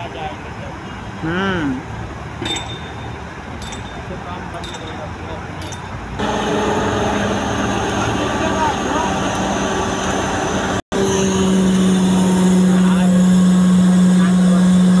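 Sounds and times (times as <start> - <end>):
crane engine droning hum: 0.0 - 15.0.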